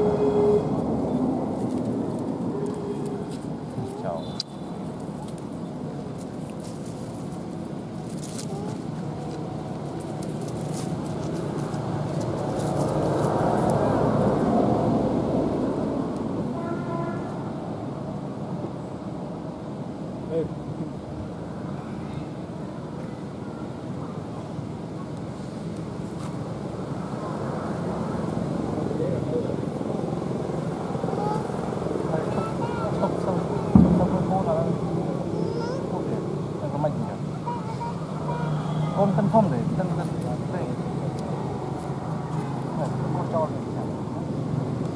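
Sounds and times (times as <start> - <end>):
indistinct voices: 0.0 - 1.4
passing motor traffic: 0.0 - 44.9.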